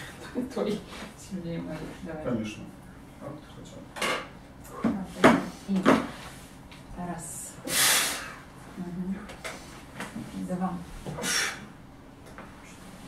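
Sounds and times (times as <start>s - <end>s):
knocks and thuds on padded bench: 4.8s - 6.2s.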